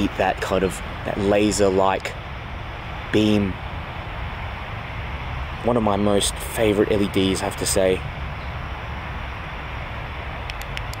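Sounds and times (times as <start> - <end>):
even hiss: 0.0 - 11.0
short clicks: 10.4 - 11.0.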